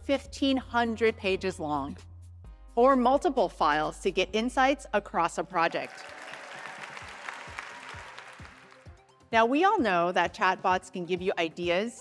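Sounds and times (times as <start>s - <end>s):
audience applauding: 5.8s - 8.9s.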